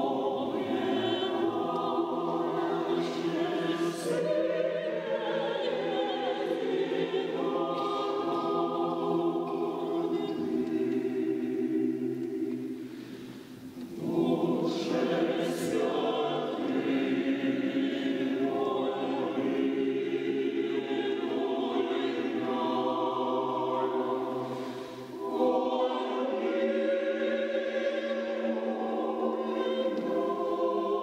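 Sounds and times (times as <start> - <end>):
mixed choir singing unaccompanied: 0.0 - 31.0.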